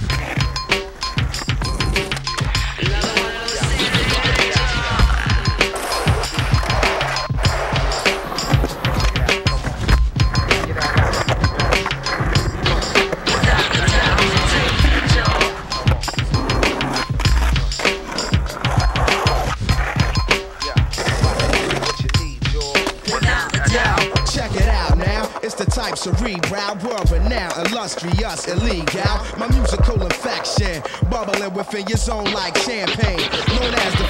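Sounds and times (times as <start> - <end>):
hip-hop backing track: 0.0 - 34.0
skateboard clacks: 0.0 - 34.0
skateboard trucks grinding: 0.0 - 34.0
skateboard wheels rolling on concrete: 0.0 - 34.0.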